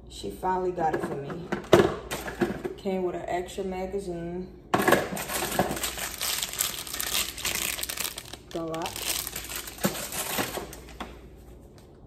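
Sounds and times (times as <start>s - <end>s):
paper and plastic packaging rustling: 5.1s - 11.2s.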